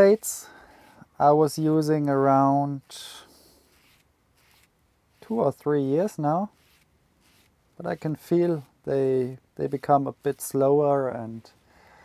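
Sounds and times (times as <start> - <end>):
sponge rubbing glue: 2.7 - 10.6.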